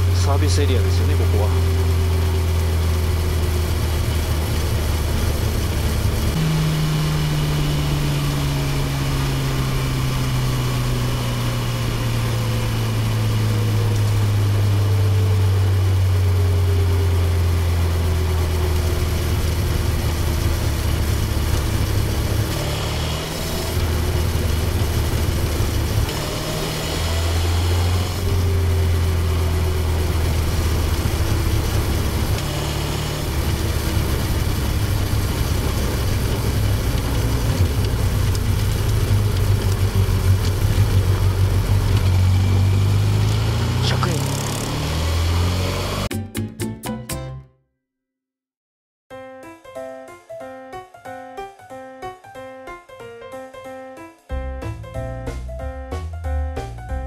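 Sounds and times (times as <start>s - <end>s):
motorcycle engine decelerating: 0.0s - 46.1s.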